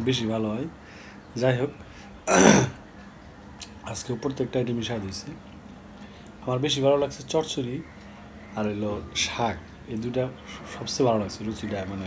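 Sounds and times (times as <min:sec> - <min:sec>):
man burping: 0:02.3 - 0:02.8.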